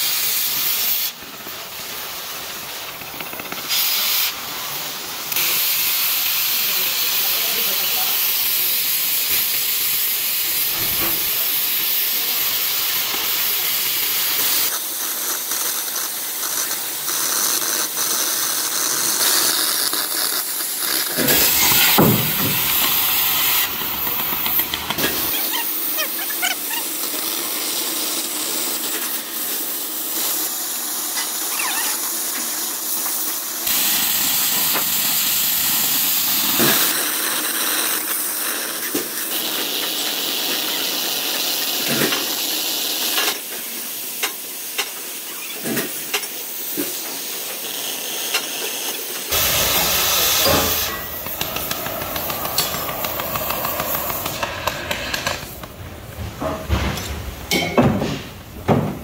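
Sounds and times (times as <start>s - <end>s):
cutting torch hissing: 0.0s - 57.5s.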